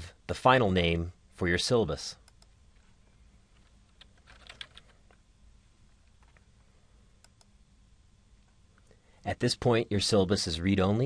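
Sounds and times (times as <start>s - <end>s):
low room hum: 0.0s - 11.0s
typing on a computer keyboard: 3.6s - 5.2s.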